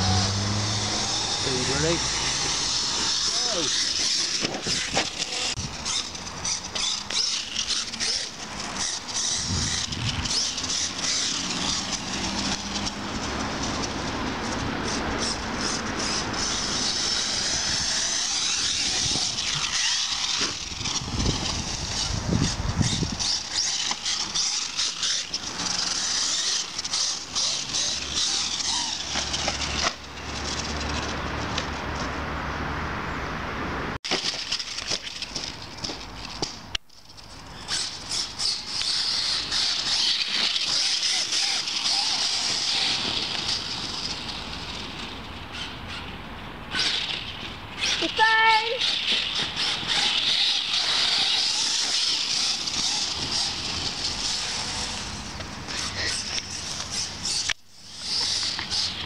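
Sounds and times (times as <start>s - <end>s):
rc truck electric motor whining: 0.0s - 31.7s, 34.1s - 36.4s, 37.5s - 46.1s, 46.7s - 59.0s.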